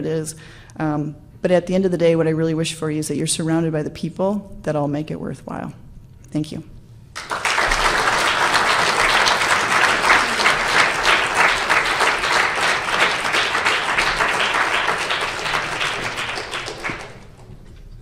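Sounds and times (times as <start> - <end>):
audience applauding: 7.2 - 17.5.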